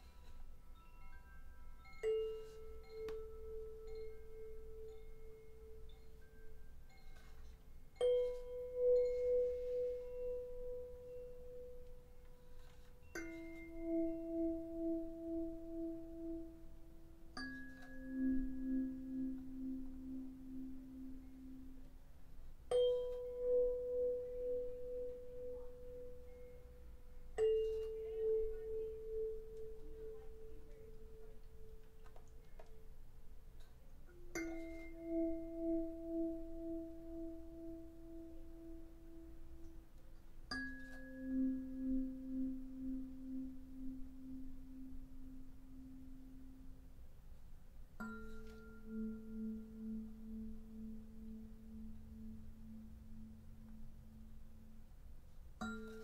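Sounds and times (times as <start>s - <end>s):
singing bowl ringing: 0.0s - 32.1s, 34.1s - 47.0s, 48.0s - 56.0s
faint high chime-like tones: 0.0s - 56.0s.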